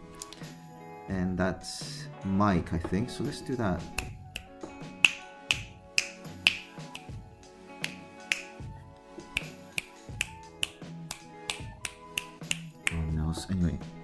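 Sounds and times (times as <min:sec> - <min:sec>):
finger snaps: 0:00.2 - 0:00.5, 0:03.9 - 0:13.1.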